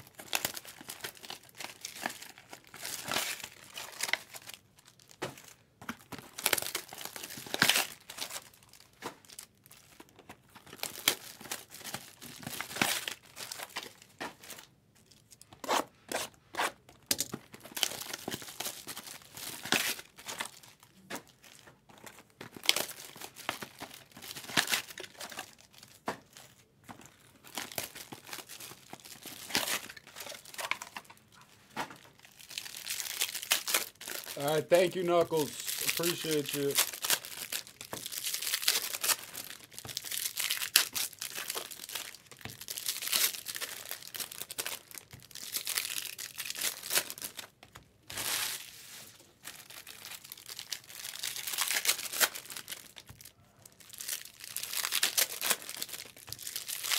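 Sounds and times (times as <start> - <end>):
foil wrappers tearing and crinkling: 0.0 - 14.7, 17.1 - 26.6, 27.4 - 31.2, 32.0 - 56.9.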